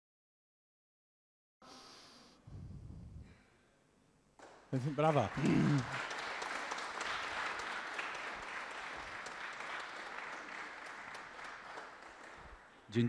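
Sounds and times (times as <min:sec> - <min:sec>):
audience applauding: 0:04.4 - 0:13.0.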